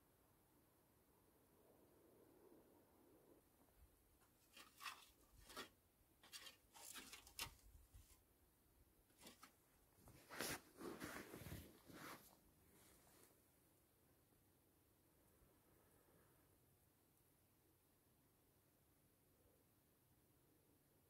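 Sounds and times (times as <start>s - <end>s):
clothing rustling: 9.1s - 13.4s
rustles on inflatable sleeping pad: 10.1s - 13.4s.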